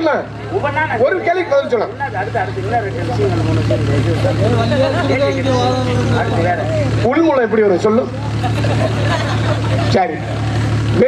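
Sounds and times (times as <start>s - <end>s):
man speaking through loudspeaker: 0.0s - 8.1s.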